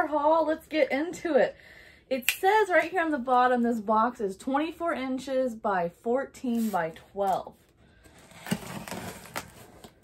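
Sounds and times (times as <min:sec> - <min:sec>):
knife cutting packing tape: 0:08.2 - 0:10.0.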